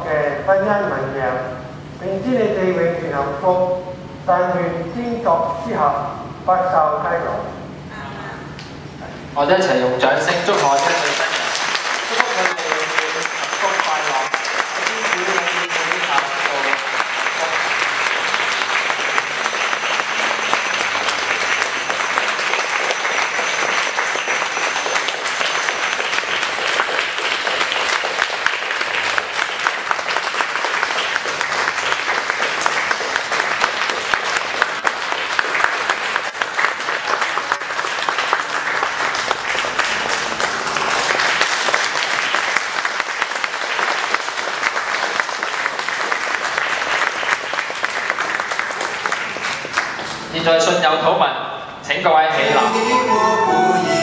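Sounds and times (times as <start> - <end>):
congregation applauding: 10.2 - 51.0.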